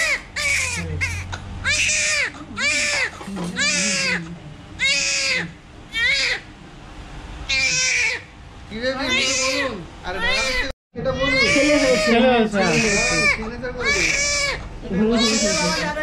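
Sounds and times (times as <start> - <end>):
newborn baby crying: 0.0 - 6.5, 7.5 - 8.3, 9.0 - 16.0.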